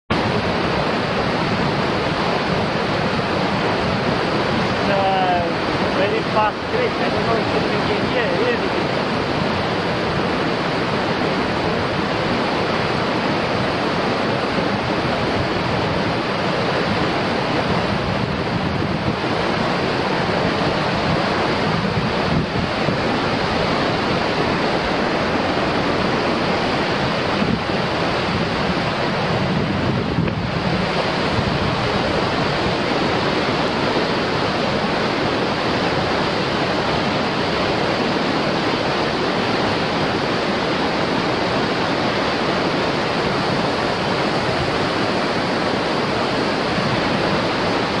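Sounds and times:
creek rushing over rocks: 0:00.1 - 0:48.0.

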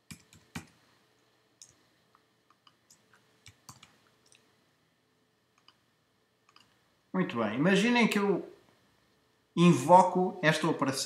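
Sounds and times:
keyboard typing: 0:00.0 - 0:00.8, 0:02.6 - 0:04.4, 0:06.5 - 0:06.7
computer mouse clicks: 0:00.1 - 0:00.8, 0:02.5 - 0:04.4, 0:05.6 - 0:05.8, 0:06.5 - 0:06.8.

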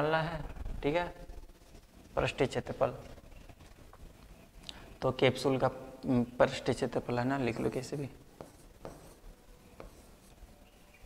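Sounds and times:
pen tapping on touchscreen: 0:08.4 - 0:09.2, 0:09.8 - 0:10.2.

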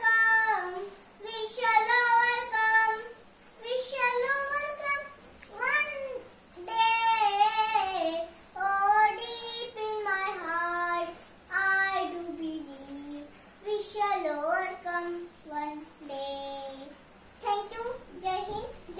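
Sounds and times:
girl singing unaccompanied: 0:00.0 - 0:18.9.

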